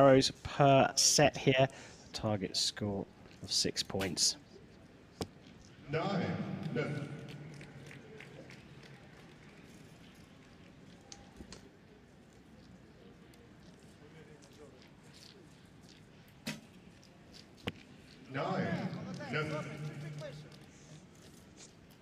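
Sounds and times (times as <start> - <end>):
quiet outdoor ambience: 0.0 - 22.0
arrow striking target: 16.4 - 16.7.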